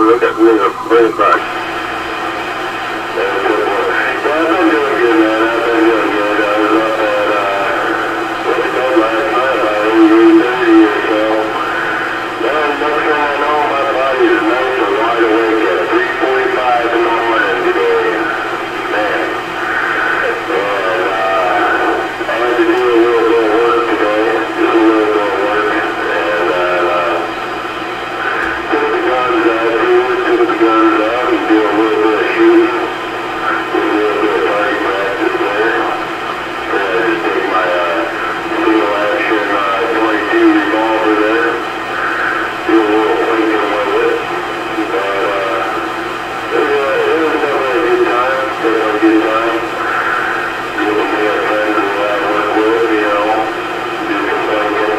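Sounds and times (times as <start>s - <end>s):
voice over cb radio speaker: 0.0s - 54.9s.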